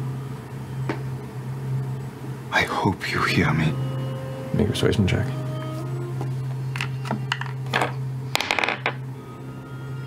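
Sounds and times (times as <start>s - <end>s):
quiet background music: 0.0s - 10.0s
dice rattling on tabletop: 8.4s - 9.0s.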